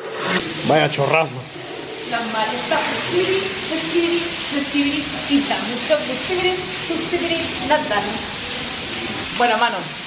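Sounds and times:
rainwater pouring onto stone: 0.4s - 10.0s
woman speaking: 2.1s - 8.2s, 9.3s - 10.0s.

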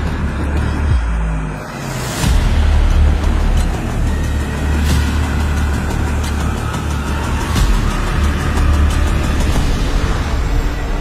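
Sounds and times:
dark suspenseful background music: 0.0s - 11.0s.

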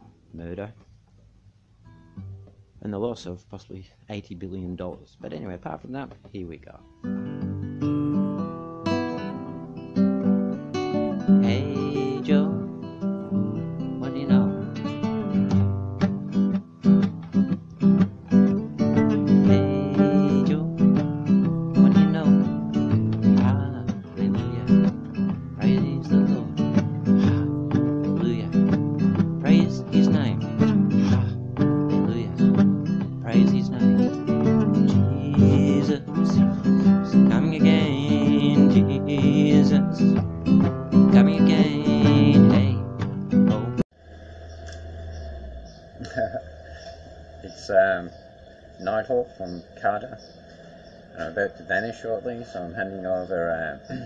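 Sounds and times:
acoustic guitar strumming: 1.8s - 2.7s, 6.9s - 43.8s
man singing: 11.3s - 12.8s, 13.5s - 14.9s, 19.2s - 21.0s, 21.7s - 40.2s, 41.0s - 43.8s.

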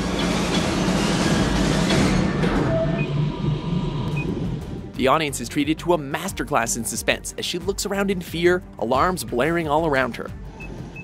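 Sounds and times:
low pulsing drone: 0.0s - 5.0s.

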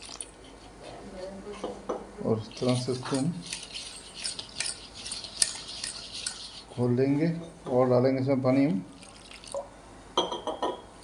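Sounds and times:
whisk scraping metal bowl: 2.4s - 7.4s.

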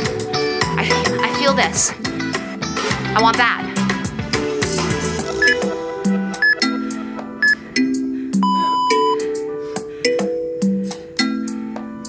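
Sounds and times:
background music with beat: 0.0s - 12.0s
long electronic timer beep: 5.4s - 5.7s, 6.4s - 6.8s, 7.4s - 7.6s, 8.4s - 9.3s.

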